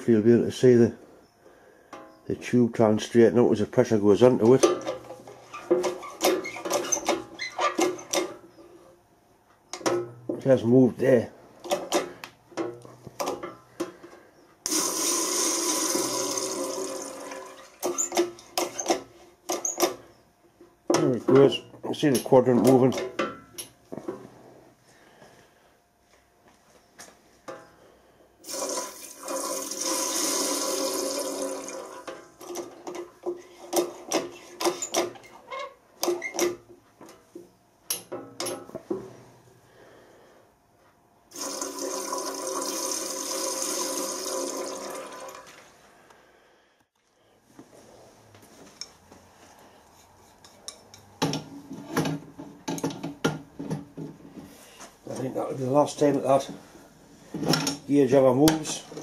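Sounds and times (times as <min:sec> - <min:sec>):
water rushing through pump: 0:14.7 - 0:18.1, 0:28.4 - 0:32.1, 0:41.3 - 0:45.5.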